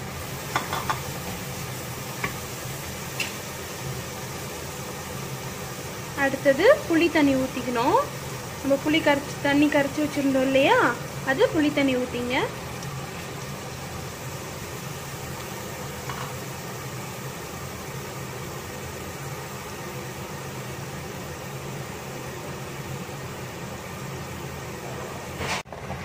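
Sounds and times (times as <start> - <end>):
fan humming with hiss: 0.0 - 26.0.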